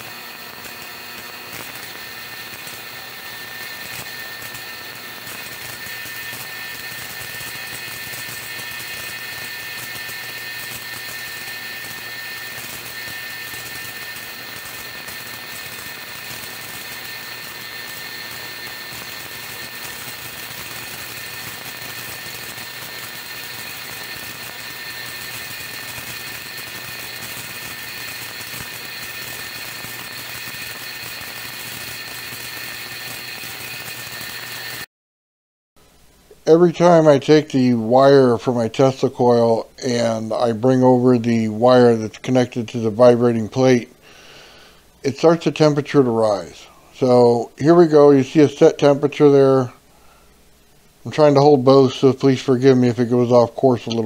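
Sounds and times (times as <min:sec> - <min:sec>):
electrical hiss: 0:00.0 - 0:34.9, 0:35.9 - 0:54.0
electrical hum: 0:00.0 - 0:34.9, 0:35.8 - 0:54.0
thin high whine: 0:00.0 - 0:34.9, 0:35.9 - 0:54.0.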